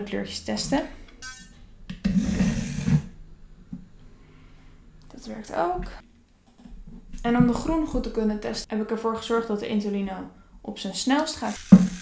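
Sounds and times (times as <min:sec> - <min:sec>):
toy train scraping on wooden track: 0:11.4 - 0:12.0.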